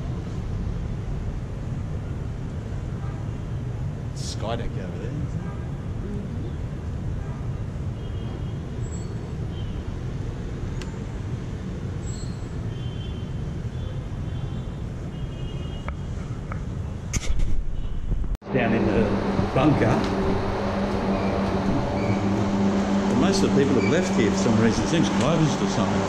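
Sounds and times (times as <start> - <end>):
distant traffic rumble: 0.0 - 26.0
indoor low hum: 18.0 - 26.0
wind on microphone: 19.0 - 23.2.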